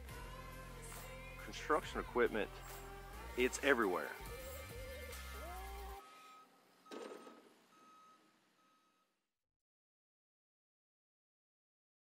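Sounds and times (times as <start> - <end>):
backup alarm beeping: 6.0 - 9.1.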